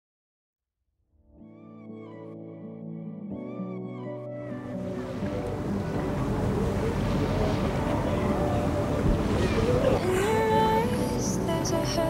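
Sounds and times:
soft background music: 1.4 - 12.0
sea waves rushing: 4.5 - 12.0.

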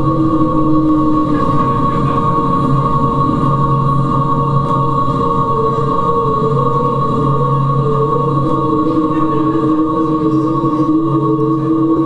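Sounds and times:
drone music with wavering tone: 0.0 - 12.0.

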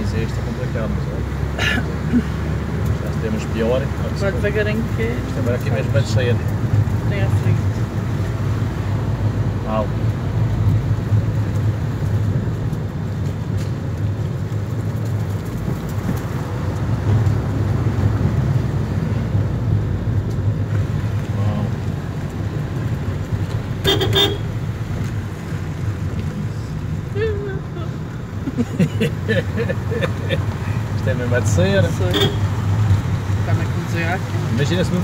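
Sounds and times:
car engine and tyres rumbling: 0.0 - 35.0.

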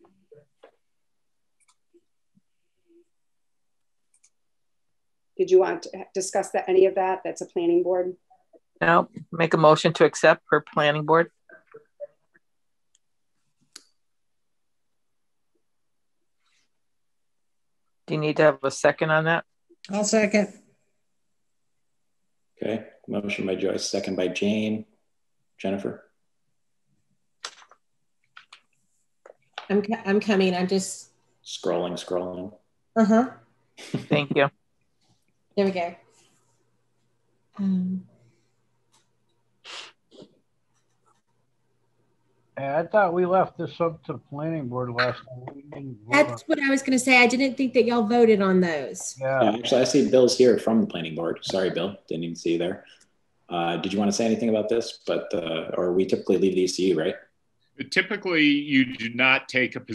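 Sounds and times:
person saying hey: 22.6 - 24.8, 42.6 - 46.4, 49.2 - 52.8, 53.5 - 57.1, 57.8 - 59.9
person speaking: 22.6 - 24.8, 25.6 - 26.0, 31.5 - 32.5, 33.1 - 34.5, 42.6 - 52.8, 53.5 - 57.2, 57.8 - 59.9
faint soft scratches: 40.2 - 41.4.

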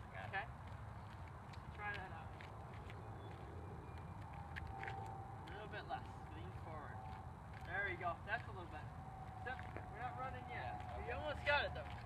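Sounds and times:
sneaker footsteps on asphalt: 0.5 - 12.0.

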